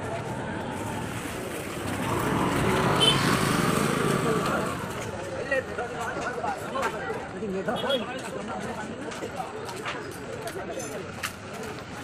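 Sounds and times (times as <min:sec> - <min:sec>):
motor scooter passing: 0:00.6 - 0:05.3.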